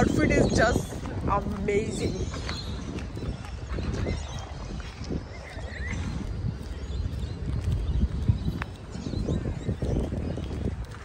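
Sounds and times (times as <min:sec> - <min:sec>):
footsteps crunching on gravel: 0:00.0 - 0:11.0
wind rumble on microphone: 0:00.0 - 0:11.0.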